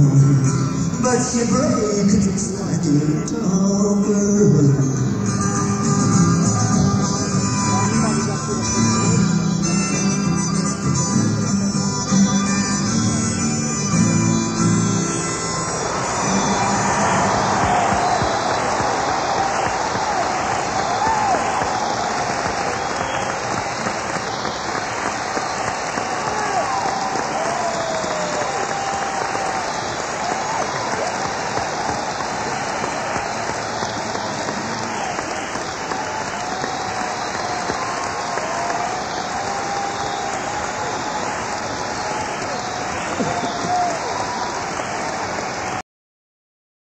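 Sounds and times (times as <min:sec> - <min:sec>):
audience applauding: 0:14.8 - 0:45.8
voices calling out: 0:15.7 - 0:45.5.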